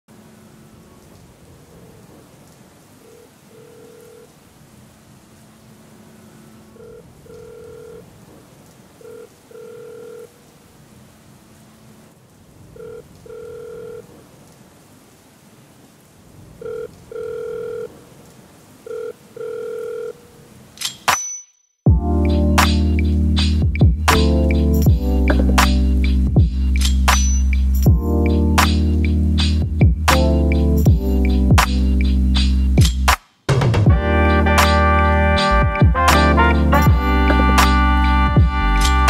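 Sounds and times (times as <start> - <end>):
telephone ringing tone: 3.0 - 4.3, 6.8 - 8.2, 9.0 - 10.4, 12.8 - 14.1, 16.6 - 17.9, 18.8 - 20.3
steady hiss: 22.2 - 33.6.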